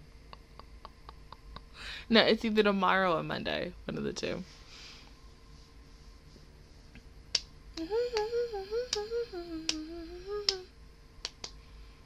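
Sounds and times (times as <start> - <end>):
fingers snapping: 7.3 - 8.3, 8.9 - 9.9, 11.2 - 11.6
woman humming: 7.8 - 10.7.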